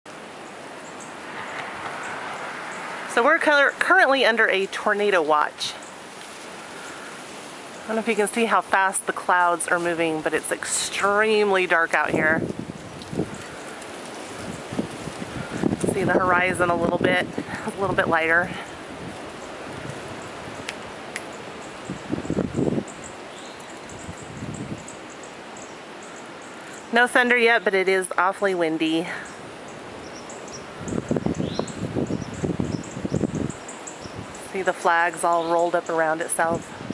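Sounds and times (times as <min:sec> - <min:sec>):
strong wind through bare trees: 0:00.0 - 0:36.9.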